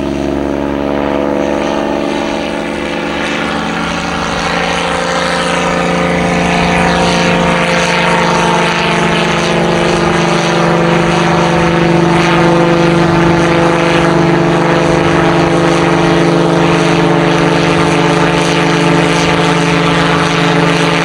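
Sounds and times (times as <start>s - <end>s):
propeller airplane engine: 0.0s - 21.0s.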